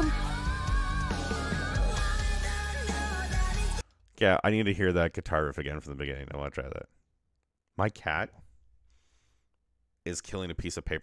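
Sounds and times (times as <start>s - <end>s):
woman singing: 0.0s - 3.8s.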